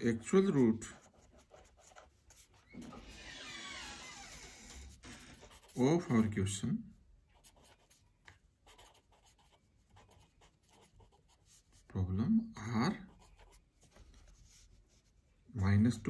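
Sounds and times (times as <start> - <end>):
person speaking: 0.0 - 2.6, 5.3 - 8.0, 8.6 - 13.6, 14.4 - 16.0
pen scratching on paper: 0.0 - 3.1, 4.4 - 6.4, 7.3 - 11.9, 13.0 - 15.1.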